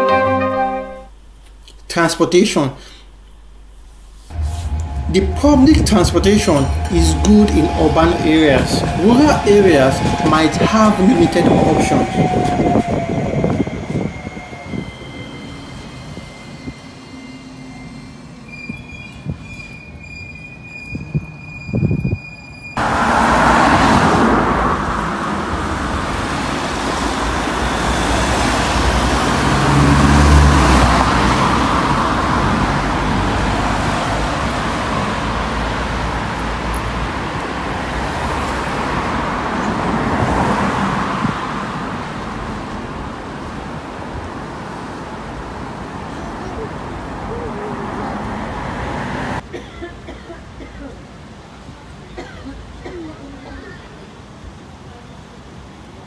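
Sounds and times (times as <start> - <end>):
tram whine on rails: 0.0 - 1.4, 2.9 - 56.0
cars passing: 4.3 - 14.2, 22.8 - 49.6.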